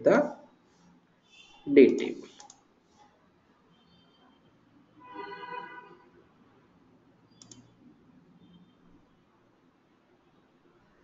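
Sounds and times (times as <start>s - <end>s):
mouse button clicks: 7.3s - 7.7s.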